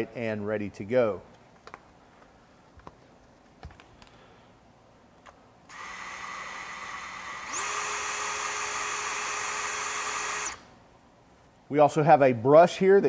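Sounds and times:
band saw running: 0:05.7 - 0:10.6.

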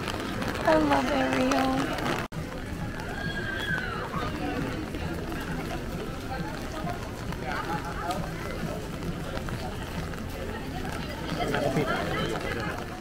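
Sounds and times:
people talking indistinctly: 0:00.5 - 0:13.0.

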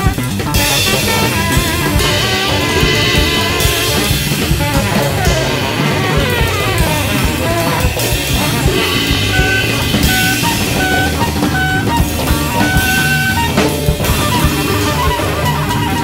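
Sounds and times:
jazz group playing: 0:00.0 - 0:16.0.

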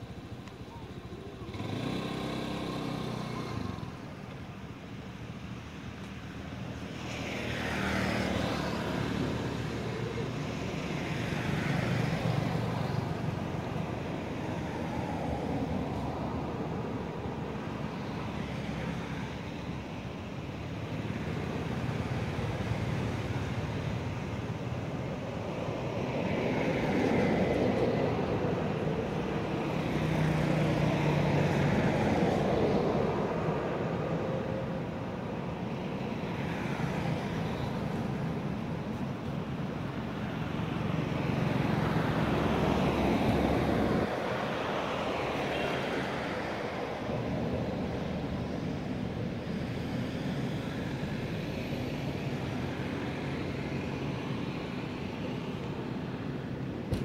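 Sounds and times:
passing motor vehicles: 0:00.0 - 0:57.0.

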